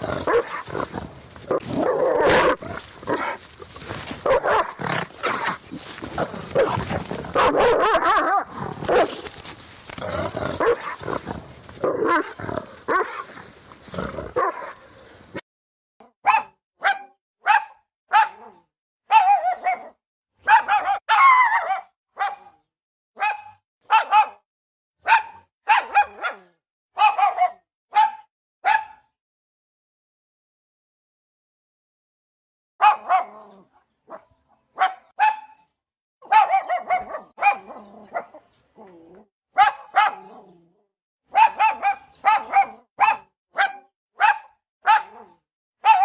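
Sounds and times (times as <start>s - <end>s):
dog barking: 0.0s - 0.9s, 1.5s - 3.4s, 4.2s - 5.6s, 6.2s - 9.5s, 10.6s - 11.2s, 11.8s - 13.3s, 14.3s - 14.8s, 16.2s - 22.6s, 23.2s - 24.4s, 25.0s - 29.1s, 32.8s - 35.6s, 36.2s - 38.5s, 39.5s - 40.5s, 41.3s - 46.0s.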